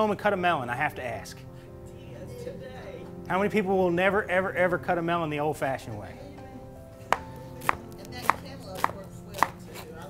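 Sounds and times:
knife chopping on plastic board: 0:07.1 - 0:09.9.

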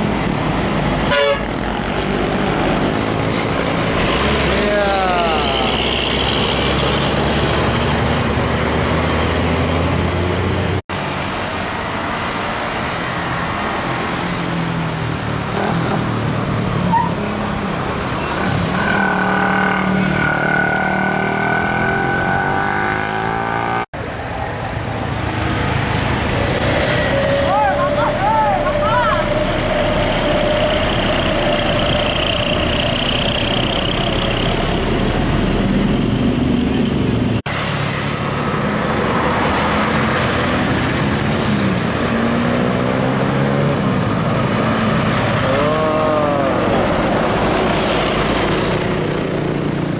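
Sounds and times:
diesel buses passing: 0:00.0 - 0:49.9
motorcycle and car traffic: 0:00.0 - 0:49.9.

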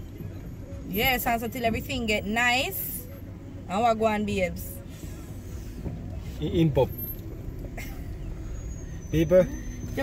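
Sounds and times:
engine and tyre rumble: 0:00.0 - 0:10.0.

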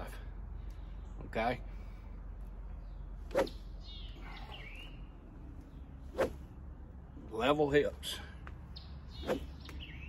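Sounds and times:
golf club swishing through air: 0:03.2 - 0:03.8, 0:05.6 - 0:06.8, 0:09.1 - 0:09.8.

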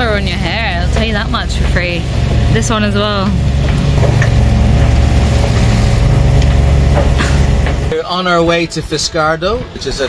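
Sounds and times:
even hum: 0:00.0 - 0:08.0
low rumble aboard yacht: 0:00.0 - 0:10.0.

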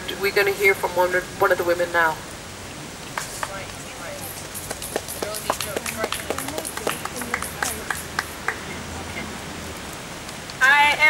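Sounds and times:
outdoor background hiss: 0:00.0 - 0:11.0
people talking faintly: 0:02.7 - 0:09.4.

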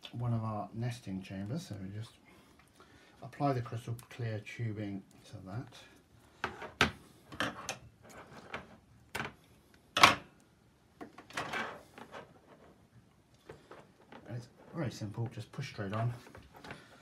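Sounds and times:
scraping rustle: 0:11.3 - 0:17.0.

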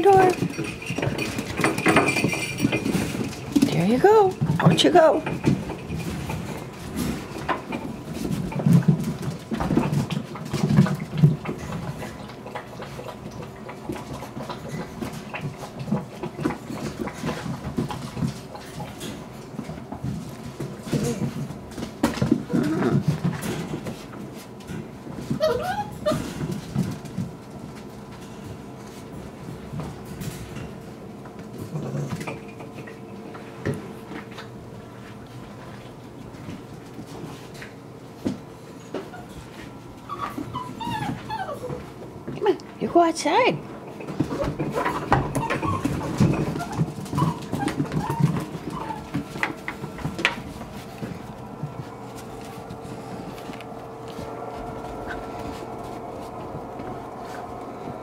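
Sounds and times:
puppy high wavering cry: 0:25.4 - 0:26.3, 0:40.0 - 0:41.8, 0:45.4 - 0:49.2.

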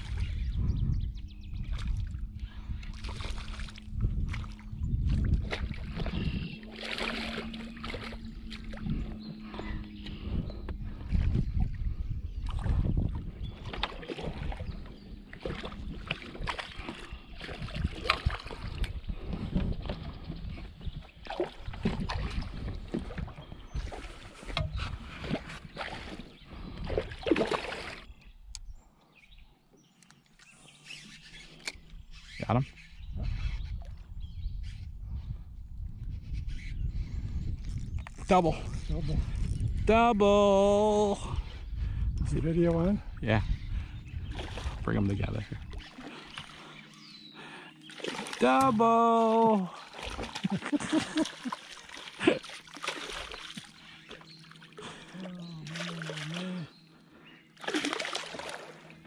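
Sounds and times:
steady low hum: 0:00.0 - 0:28.0
fish splashing at the surface: 0:27.0 - 0:28.0, 0:47.9 - 0:56.6, 0:57.6 - 0:59.0.

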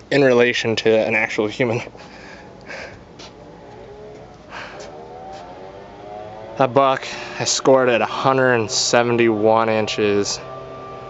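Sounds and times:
car engine accelerating: 0:01.7 - 0:11.0.

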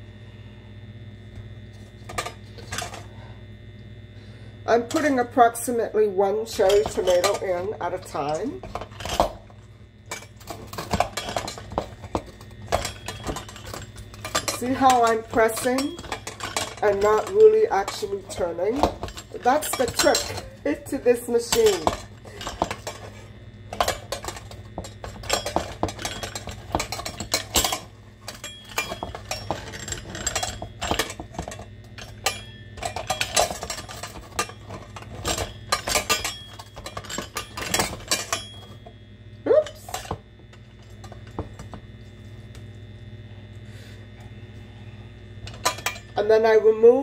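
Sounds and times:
food mill metal scraping and clinking: 0:06.5 - 0:09.5, 0:10.1 - 0:38.9.

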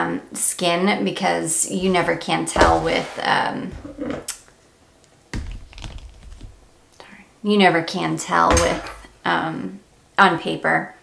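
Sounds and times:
knock: 0:01.8 - 0:04.0.

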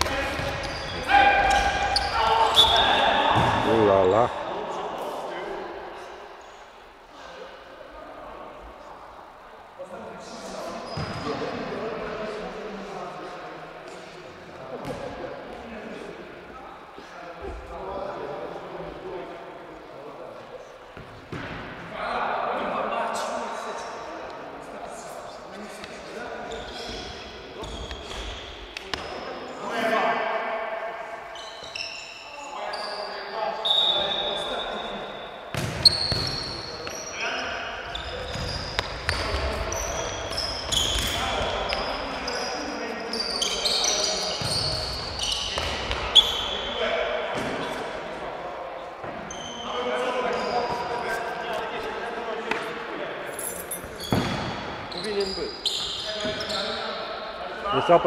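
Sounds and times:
sneaker squeaks on court floor: 0:00.0 - 0:03.7, 0:10.6 - 0:11.6, 0:25.8 - 0:29.4, 0:31.3 - 0:47.8, 0:49.0 - 0:51.2, 0:53.3 - 0:57.2
players' indistinct voices: 0:00.0 - 0:58.0.

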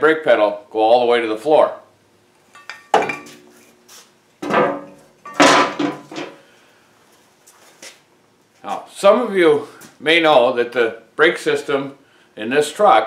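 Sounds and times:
metal parts clanking: 0:02.6 - 0:03.4, 0:04.4 - 0:06.4.

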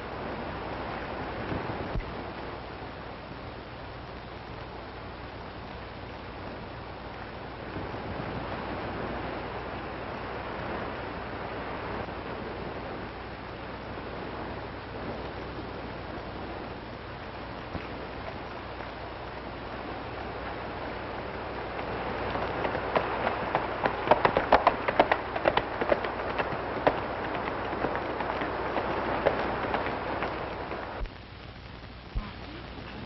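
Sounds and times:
film soundtrack hiss: 0:00.0 - 0:33.0
hoofbeats at a run: 0:21.7 - 0:31.1.

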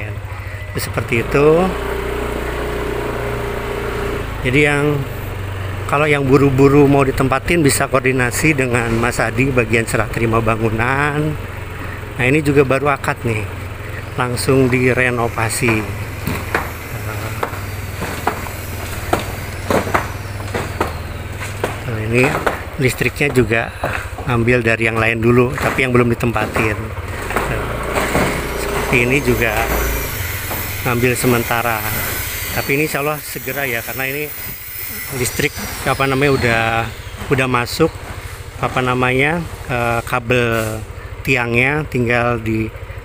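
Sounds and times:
small engine running steadily: 0:00.0 - 0:43.0
sharp knocks and taps: 0:15.5 - 0:24.4, 0:25.0 - 0:30.8.

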